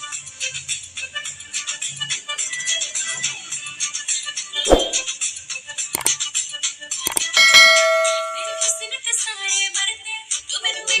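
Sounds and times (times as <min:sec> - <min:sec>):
quick clicks: 0:06.0 - 0:06.2, 0:07.1 - 0:07.4
bell-like chime: 0:07.1 - 0:08.9.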